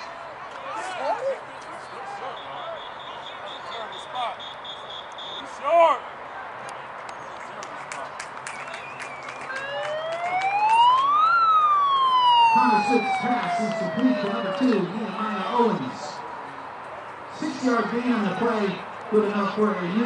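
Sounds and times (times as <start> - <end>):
siren wailing: 9.4 - 15.5.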